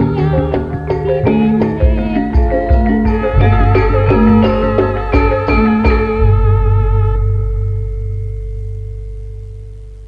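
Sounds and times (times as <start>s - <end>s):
gong ringing: 2.9s - 10.0s.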